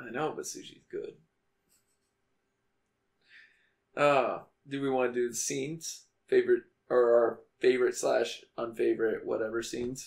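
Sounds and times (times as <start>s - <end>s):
faint electrical hum: 0.0s - 10.0s
person speaking: 3.9s - 10.0s.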